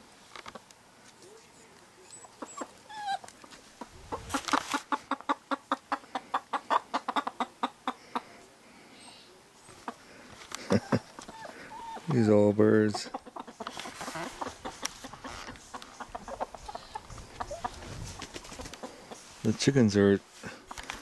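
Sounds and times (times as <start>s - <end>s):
hen clucking: 2.0s - 8.5s, 9.1s - 19.8s
short high hen calls: 10.9s - 19.4s.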